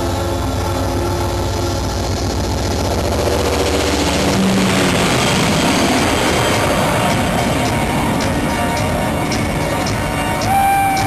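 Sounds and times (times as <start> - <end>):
dense noise swell: 0.0 - 11.0
low throbbing rumble drone: 0.0 - 11.0.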